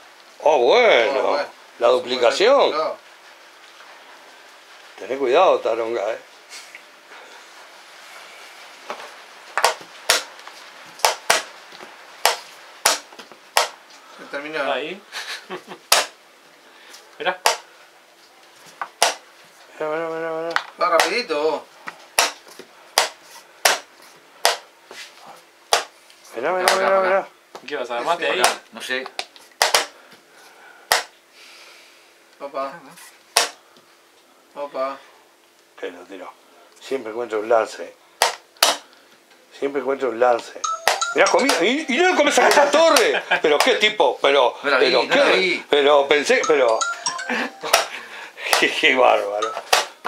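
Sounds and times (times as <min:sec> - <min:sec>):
chess pieces knocking on board: 0:09.6 - 0:10.3, 0:11.0 - 0:11.5, 0:12.2 - 0:13.8, 0:17.4 - 0:17.6, 0:23.0 - 0:24.6, 0:29.6 - 0:30.0.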